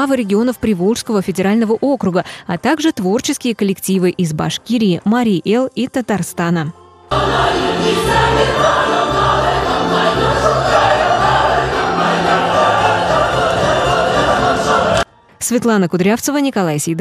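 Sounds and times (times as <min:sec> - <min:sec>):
folk dance music: 0:07.1 - 0:15.0
choir singing: 0:07.1 - 0:15.1.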